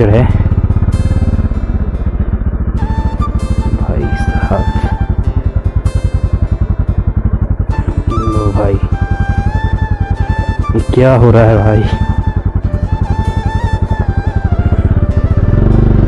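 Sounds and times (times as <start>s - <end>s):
motorcycle engine at low revs: 0.0s - 16.0s.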